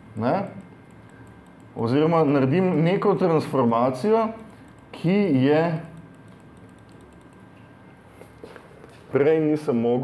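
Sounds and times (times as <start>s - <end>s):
low steady hum: 0.0s - 10.0s
computer keys clicking: 0.4s - 3.0s, 3.6s - 7.6s.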